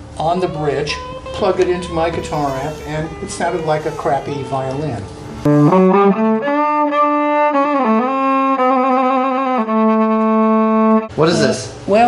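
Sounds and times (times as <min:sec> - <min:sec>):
bowed violin notes: 0:00.9 - 0:11.1.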